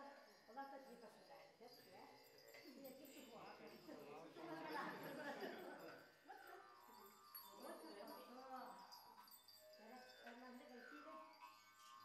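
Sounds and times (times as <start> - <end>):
person chanting softly: 1.3 - 12.0.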